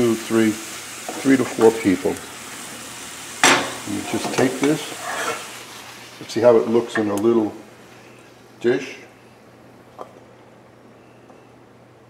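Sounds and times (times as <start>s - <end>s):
vegetables sizzling in butter: 0.0s - 9.5s
utensil knocking pan: 3.4s - 4.8s.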